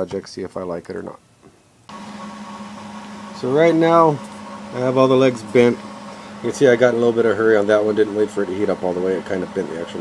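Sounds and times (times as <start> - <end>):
man speaking: 0.0 - 1.2, 3.4 - 5.8, 6.4 - 10.0
machine-like hum: 1.9 - 10.0.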